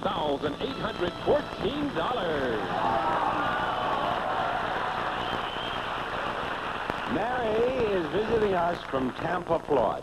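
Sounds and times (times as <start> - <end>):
audience applauding: 2.0 - 9.4.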